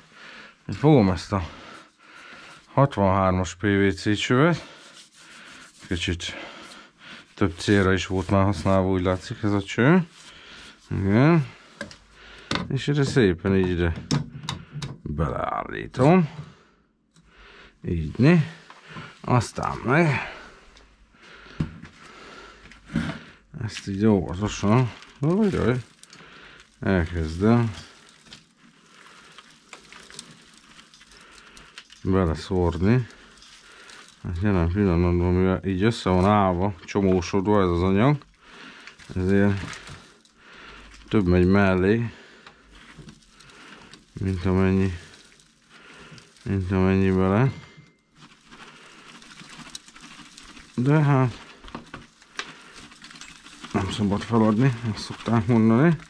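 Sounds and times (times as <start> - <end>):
wood chips pattering into stove: 0.0 - 13.9, 18.0 - 20.8, 21.9 - 56.0
faint rustling: 4.0 - 56.0.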